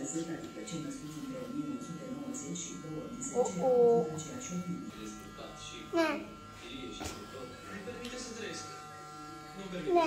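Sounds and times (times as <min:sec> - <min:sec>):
electric hair clipper buzzing: 0:00.0 - 0:10.0
faint background speech: 0:00.0 - 0:10.0.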